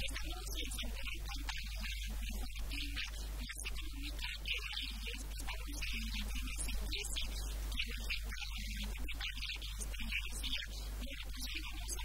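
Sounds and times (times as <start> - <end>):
low electrical hum: 0.0 - 12.0
woman talking: 0.0 - 12.0.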